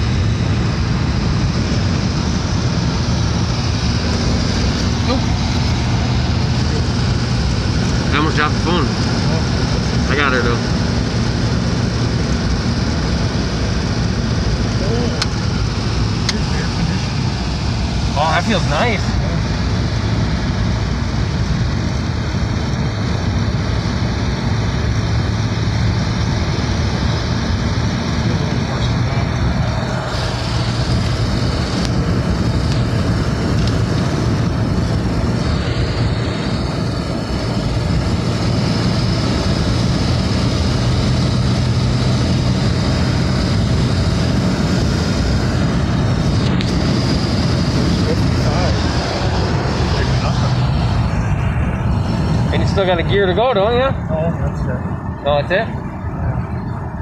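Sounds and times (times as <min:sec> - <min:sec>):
low engine hum: 0:00.0 - 0:57.0
wind and tyre noise: 0:00.0 - 0:57.0.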